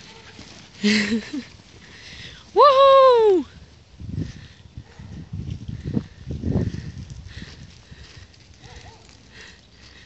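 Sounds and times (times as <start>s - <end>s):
footsteps on grass and gravel: 0.0s - 2.1s, 5.3s - 10.0s.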